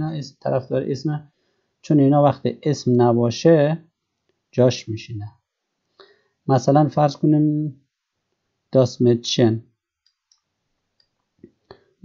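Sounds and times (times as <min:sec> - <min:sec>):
man speaking: 0:00.0 - 0:01.2, 0:01.9 - 0:03.8, 0:04.6 - 0:05.3, 0:06.5 - 0:07.7, 0:08.8 - 0:09.6.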